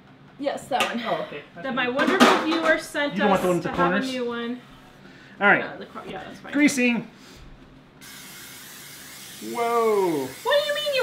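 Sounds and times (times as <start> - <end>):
aerosol spray hissing onto pan: 8.0 - 11.0.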